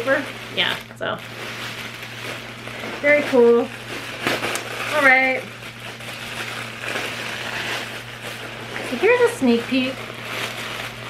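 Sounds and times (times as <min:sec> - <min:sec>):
plastic bag and paper crinkling: 0:00.0 - 0:11.0.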